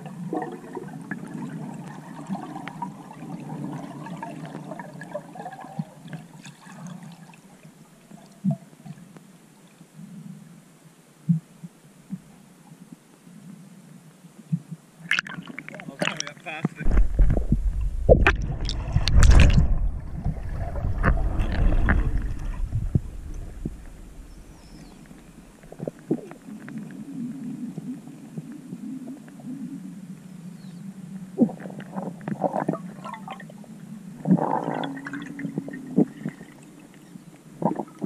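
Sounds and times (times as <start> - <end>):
underwater water rumble: 14.5 - 38.0
faint low hum: 15.7 - 31.6
muffled underwater knocks: 16.0 - 26.2.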